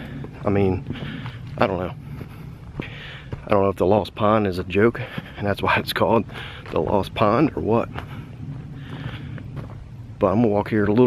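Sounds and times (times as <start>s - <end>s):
faint outdoor noise: 0.0s - 11.0s
wind rumble on microphone: 0.0s - 11.0s.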